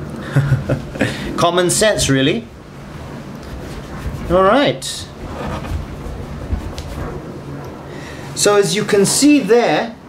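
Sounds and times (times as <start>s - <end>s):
cloth rubbing on console: 2.8s - 8.4s.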